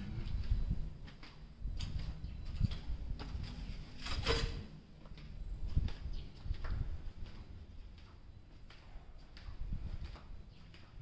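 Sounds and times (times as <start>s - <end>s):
footsteps on concrete: 0.1s - 11.0s.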